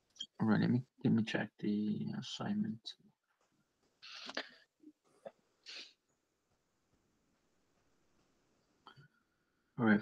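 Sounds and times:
person breathy hiss: 5.7 - 5.9.

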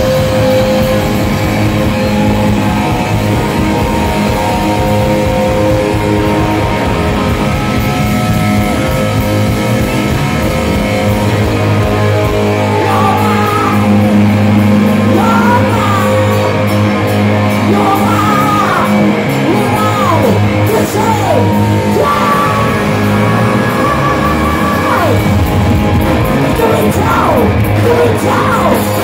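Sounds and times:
bass guitar: 0.0 - 29.0
drums: 0.0 - 29.0
electric guitars: 0.0 - 29.0
man singing high vocals: 12.7 - 14.1, 15.0 - 16.5, 17.6 - 25.5, 26.3 - 29.0.

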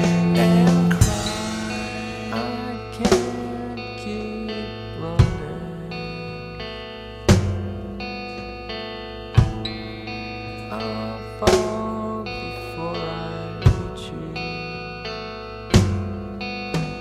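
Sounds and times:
sustained guitar notes: 0.0 - 17.0.

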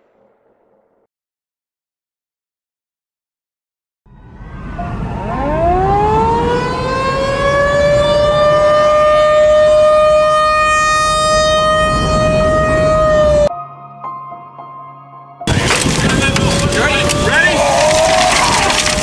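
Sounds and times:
warning siren winding up: 4.6 - 13.5, 15.5 - 19.0.

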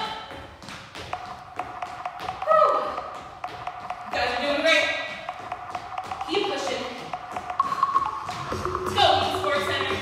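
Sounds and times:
shoes tapping on hardwood floor: 0.0 - 10.0.

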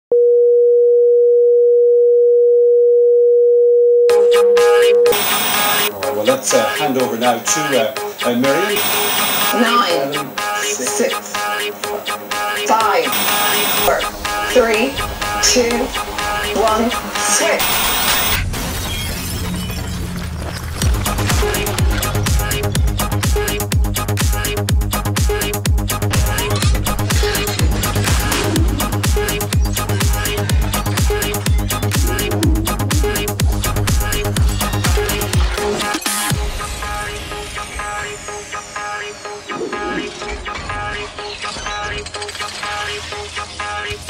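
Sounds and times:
electronic test tone: 0.2 - 5.9, 8.5 - 10.0, 13.0 - 14.1, 17.5 - 18.4
jumble of music and noise: 4.6 - 18.4
loud static hiss: 5.1 - 18.4
glass shattering sound effect: 18.4 - 21.7.

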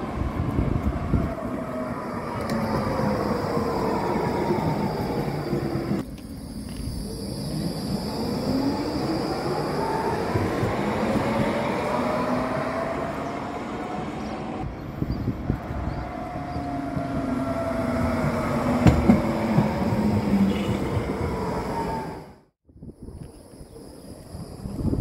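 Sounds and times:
rolling rumble of tram: 0.0 - 22.5
tram motor whine: 0.0 - 22.5.

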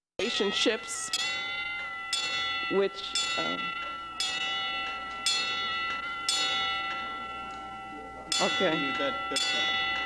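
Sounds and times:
clock bell striking: 0.2 - 10.0.

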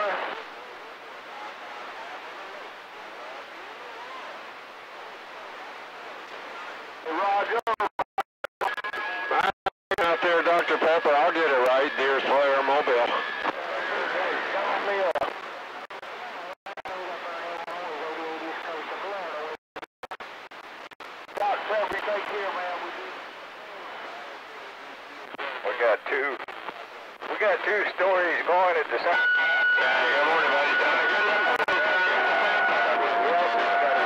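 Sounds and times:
garbled voices over radio: 25.4 - 29.2
steady radio whistle: 28.3 - 34.0.

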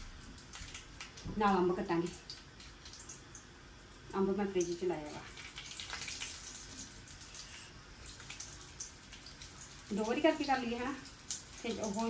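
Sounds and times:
gourds sizzling in oil: 0.0 - 12.0.

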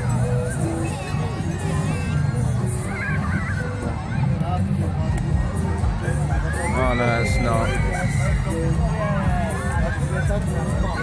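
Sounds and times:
fairground music with bass: 0.0 - 11.0.

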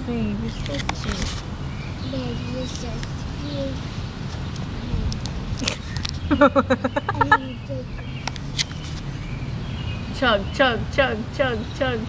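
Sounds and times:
voice repeating short syllables: 7.0 - 8.0.

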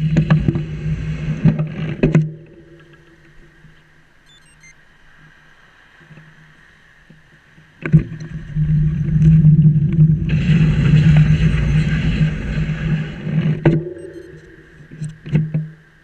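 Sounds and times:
wind buffeting microphone: 7.6 - 15.2
low hum: 7.8 - 16.0.

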